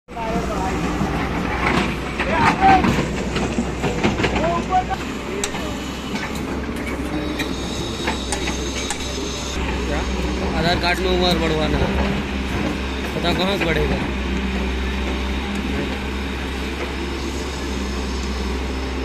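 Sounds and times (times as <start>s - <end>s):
excavator diesel engine running: 0.1s - 19.0s.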